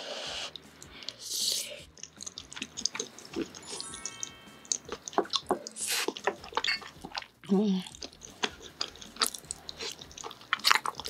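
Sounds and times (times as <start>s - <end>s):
wet chewing of soft food: 0.0s - 11.0s
lip smacks and mouth clicks: 0.5s - 3.6s, 4.7s - 11.0s
short chime-like tone: 3.6s - 4.9s.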